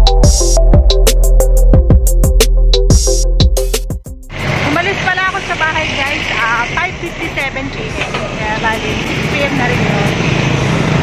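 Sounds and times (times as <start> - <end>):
vehicle engine rumble: 4.0 - 11.0
road traffic noise: 4.2 - 11.0.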